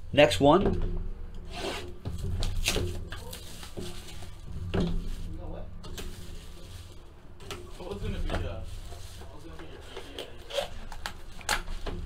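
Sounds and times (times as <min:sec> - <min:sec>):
hands rustling plastic wrapping: 0:02.2 - 0:12.0
cards scraping: 0:08.7 - 0:11.8.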